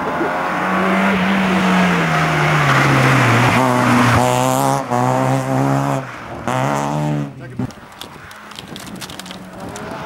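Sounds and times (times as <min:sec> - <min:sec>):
rally car engine revving past: 0:00.0 - 0:07.4.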